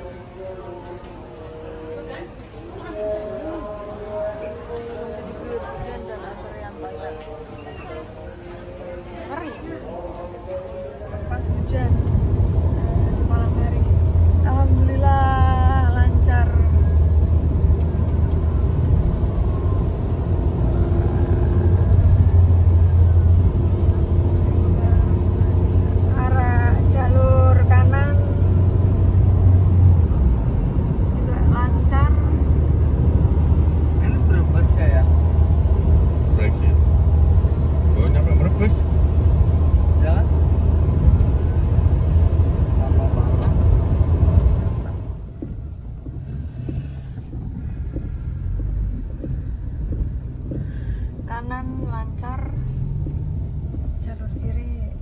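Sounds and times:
engine and tyre drone in car: 10.8 - 55.0.

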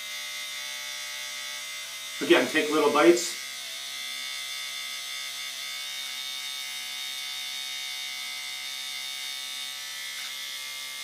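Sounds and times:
electric beard trimmer buzzing: 0.0 - 11.0.

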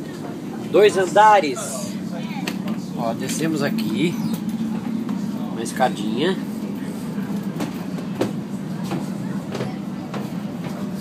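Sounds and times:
train wagon low rumble: 0.0 - 11.0.

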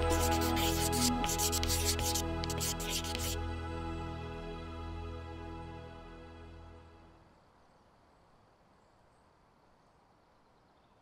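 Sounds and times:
scratchy hissing rubbing strokes: 0.0 - 3.4
soft background music: 0.0 - 7.2.

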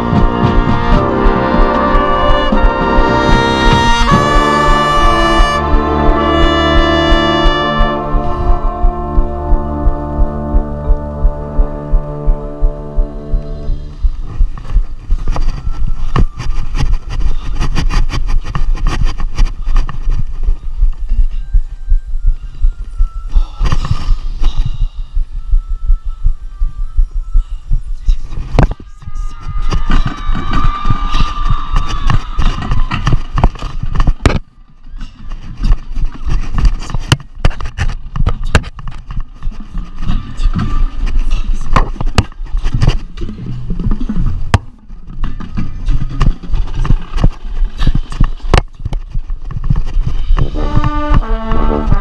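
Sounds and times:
brass chord: 0.0 - 14.0, 50.6 - 52.0
camera rumbling and thumping: 0.0 - 21.6, 22.2 - 25.6, 27.7 - 52.0
faint marching band music: 0.0 - 25.0, 49.6 - 52.0.

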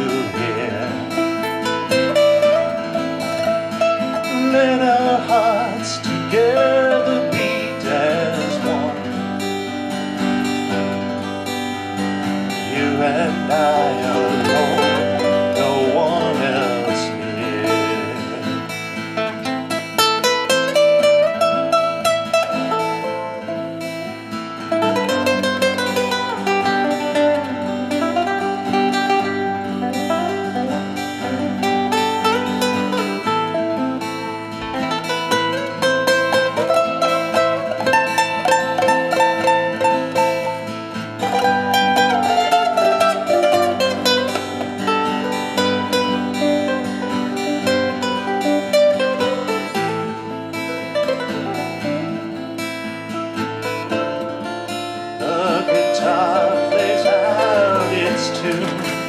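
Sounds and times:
nylon-string guitar solo: 0.0 - 59.0.

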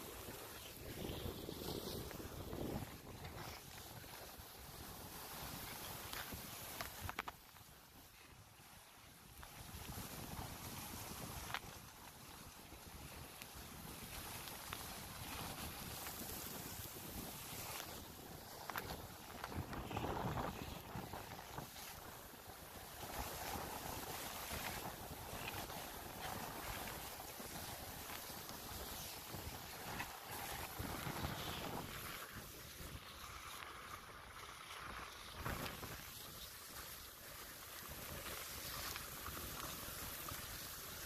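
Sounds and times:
wind buffeting microphone: 0.0 - 4.9, 15.2 - 33.2
tree dragged over snow: 0.0 - 41.0.

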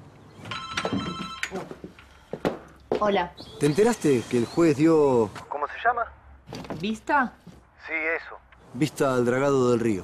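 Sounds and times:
electronic telephone ring: 0.5 - 1.6.

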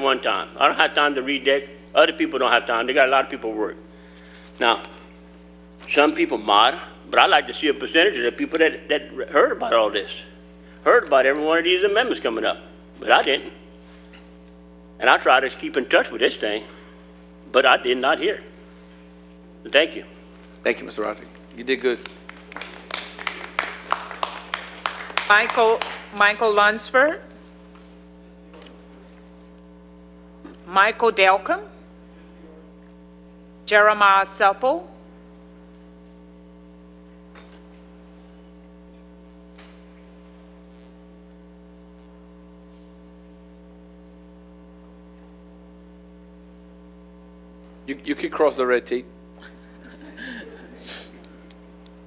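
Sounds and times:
low room hum: 0.0 - 52.0
people clapping lightly: 21.3 - 26.2.

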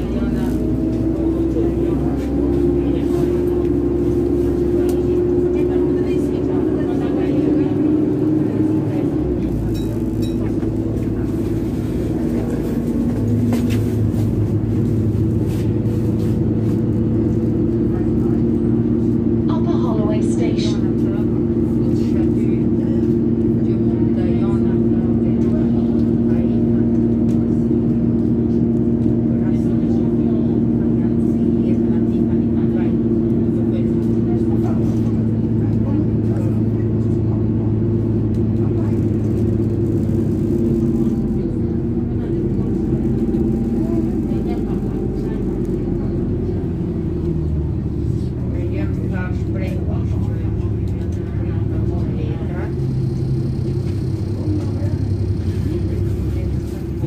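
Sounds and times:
bus diesel engine droning: 0.0 - 57.0
road rumble: 0.0 - 57.0.

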